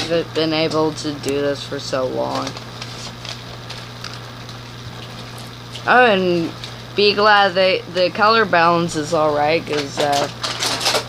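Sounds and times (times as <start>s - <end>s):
person speaking: 0.0s - 2.6s, 5.8s - 10.3s.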